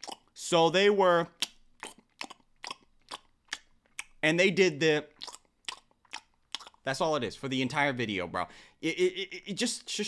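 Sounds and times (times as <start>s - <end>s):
wet mouth clicks and smacks: 0.0s - 0.3s, 1.3s - 4.2s, 5.2s - 6.8s
person chewing food: 0.0s - 0.4s, 1.2s - 4.2s, 5.0s - 6.9s.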